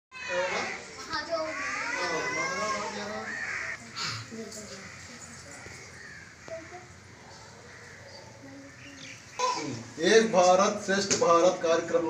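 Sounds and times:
children speaking together: 0.2 - 10.0.

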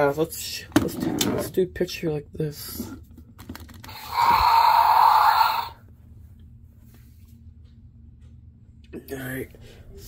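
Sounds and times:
toy dinosaur roar: 3.9 - 5.8.

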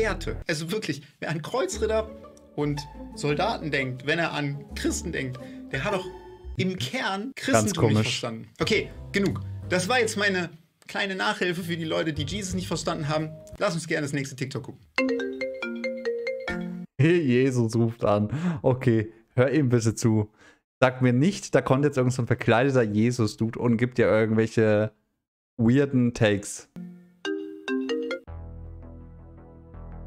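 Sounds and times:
mobile phone ringtone: 15.0 - 16.9, 27.2 - 28.3
held chord with deep bass: 28.3 - 30.0.

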